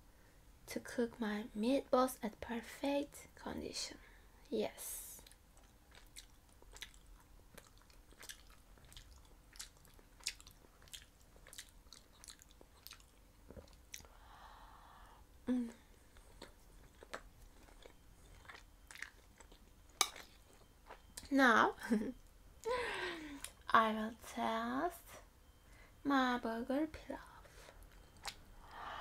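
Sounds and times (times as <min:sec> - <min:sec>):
close chewing with wet mouth clicks: 0:05.2 - 0:14.2, 0:16.0 - 0:21.3, 0:27.7 - 0:28.5
person breathing: 0:14.0 - 0:15.3, 0:22.7 - 0:23.5, 0:28.6 - 0:29.0
person humming mm: 0:15.4 - 0:15.9.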